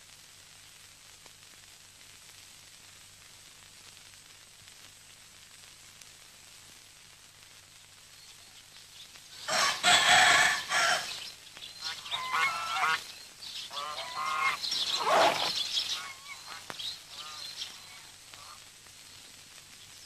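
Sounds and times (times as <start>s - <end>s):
rooster crowing: 9.4s - 13.0s, 13.7s - 17.5s
geese honking: 9.4s - 18.6s.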